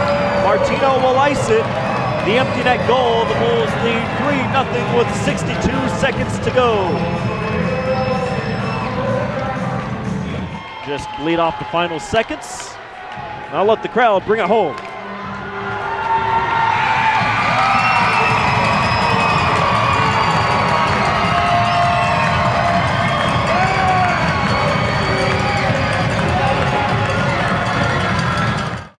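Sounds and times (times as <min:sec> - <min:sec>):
arena crowd cheering: 0:00.0 - 0:29.0
whoops and yells: 0:14.7 - 0:27.9.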